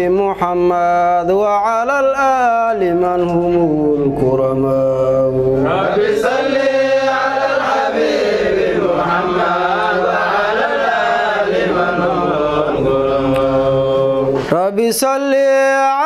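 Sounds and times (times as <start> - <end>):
man chanting devotional song: 0.0 - 7.5, 11.6 - 16.0.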